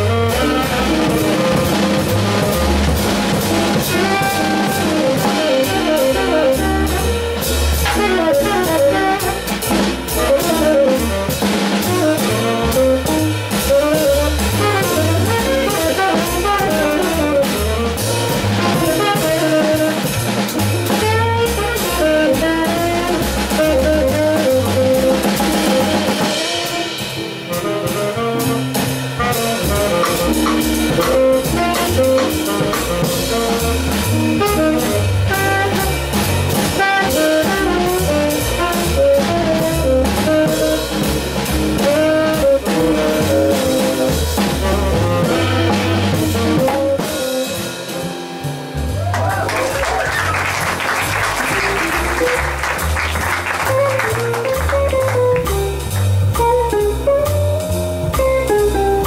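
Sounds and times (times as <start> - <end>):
tenor saxophone melody: 0.0 - 48.1, 49.9 - 59.0
drum kit cymbals: 0.0 - 59.0
upright double bass: 0.0 - 59.0.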